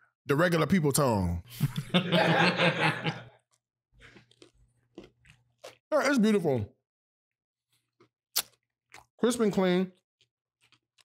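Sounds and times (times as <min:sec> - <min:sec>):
man laughing: 0:01.5 - 0:03.4
man chewing food: 0:03.3 - 0:05.9, 0:07.7 - 0:09.2, 0:09.9 - 0:11.0.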